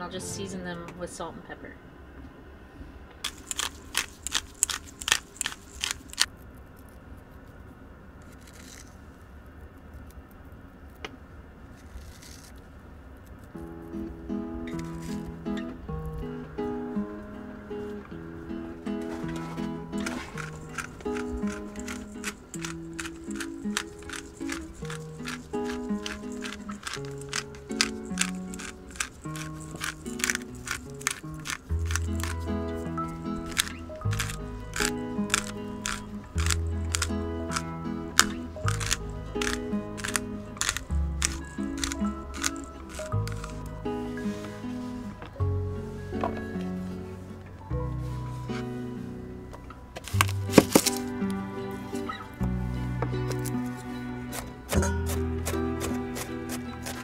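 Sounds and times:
instrumental melody: 0:13.6 - 0:57.0.

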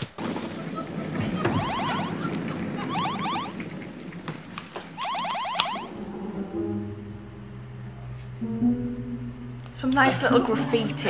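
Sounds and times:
rapid electronic chirping trills: 0:01.5 - 0:02.2, 0:02.8 - 0:03.6, 0:05.0 - 0:08.1
steady low hum: 0:01.6 - 0:11.0
dense electronic background: 0:05.0 - 0:11.0.

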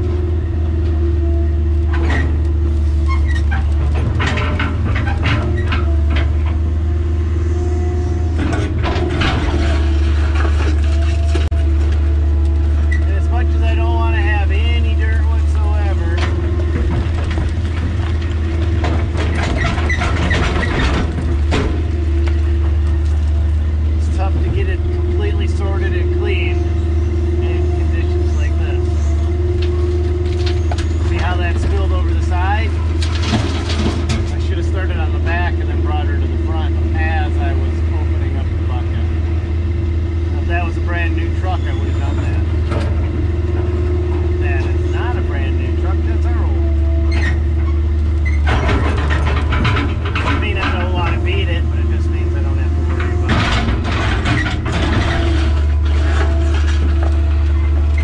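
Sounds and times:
excavator diesel engine running: 0:00.0 - 0:58.0
hydraulic pump whine: 0:00.0 - 0:58.0
rock and dirt clattering: 0:01.8 - 0:06.8, 0:07.6 - 0:39.2, 0:40.4 - 0:58.0.

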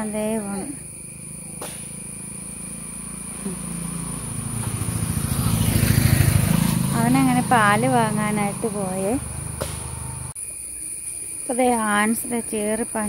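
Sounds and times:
motor scooter engine passing by: 0:00.0 - 0:10.4.

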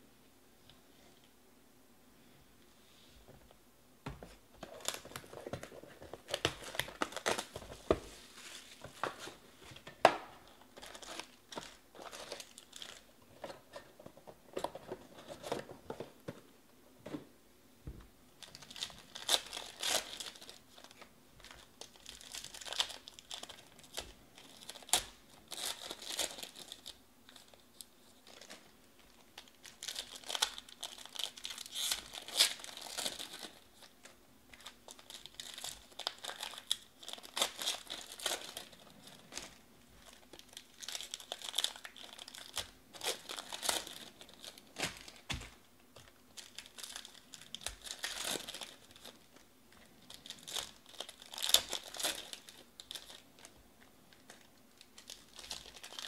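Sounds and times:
foil wrappers crinkling and tearing: 0:04.6 - 0:09.8, 0:10.5 - 0:13.1, 0:18.4 - 0:56.0.

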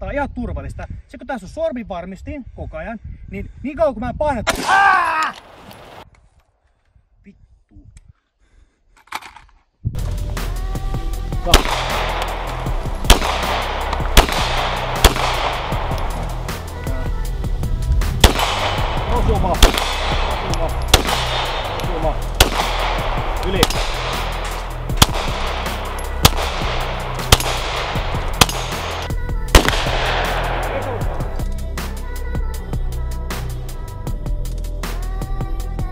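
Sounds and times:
handgun shots: 0:11.5 - 0:16.7, 0:18.2 - 0:31.4.

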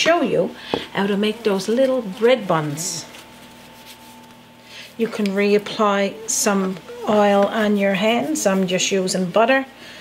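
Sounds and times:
faint steady hum: 0:00.0 - 0:10.0
hands kneading sticky dough: 0:01.5 - 0:04.5.

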